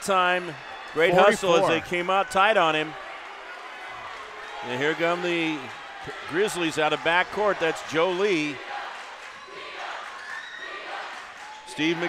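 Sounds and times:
crowd talking and cheering: 0.0s - 12.0s.

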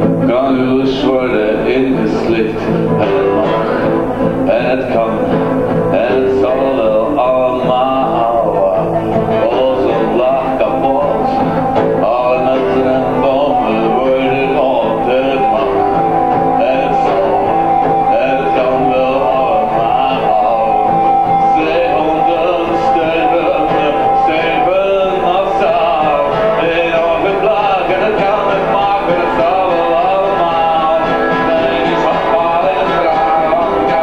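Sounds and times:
acoustic guitars playing: 0.0s - 34.0s.

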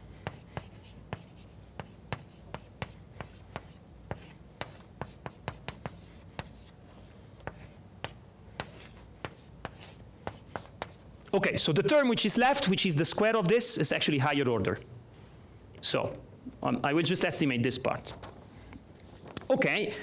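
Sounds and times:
chalk tapping on a blackboard: 0.2s - 6.7s, 7.4s - 11.0s.

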